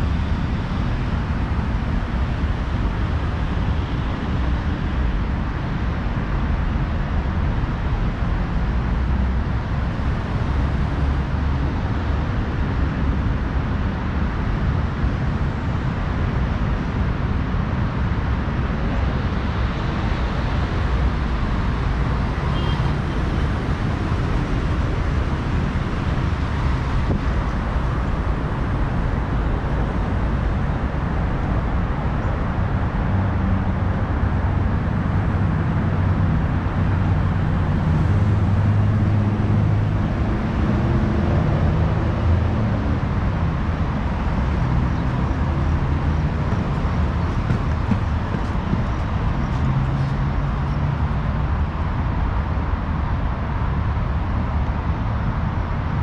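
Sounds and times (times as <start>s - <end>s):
heavy vehicle engine hum: 0.0s - 56.0s
road traffic noise: 0.0s - 56.0s.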